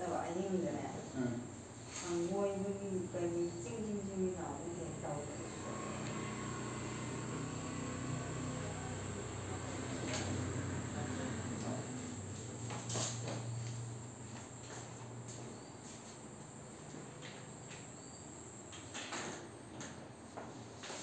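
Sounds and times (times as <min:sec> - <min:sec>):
faint high whine: 0:00.0 - 0:19.1.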